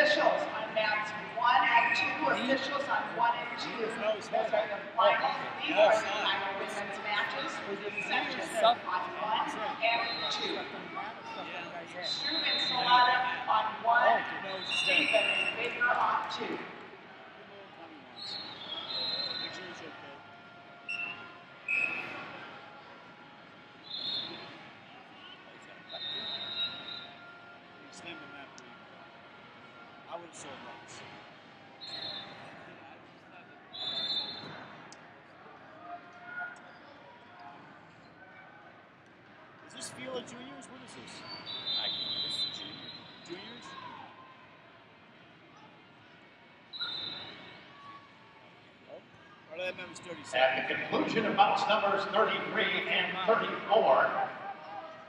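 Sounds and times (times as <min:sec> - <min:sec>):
people talking indistinctly: 0:00.0 - 0:38.2, 0:39.0 - 0:43.9, 0:46.8 - 0:54.8
distant voices in a hall: 0:00.0 - 0:55.0
referee's whistle blasts: 0:12.1 - 0:13.2, 0:14.3 - 0:16.0, 0:18.2 - 0:19.6, 0:20.8 - 0:22.3, 0:23.8 - 0:24.6, 0:25.2 - 0:27.5, 0:31.8 - 0:32.4, 0:33.7 - 0:34.8, 0:41.2 - 0:43.7, 0:46.7 - 0:47.7.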